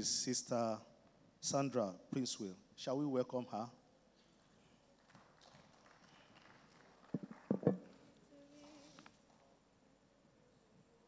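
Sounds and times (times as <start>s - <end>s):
quick knocks: 7.2s - 7.8s.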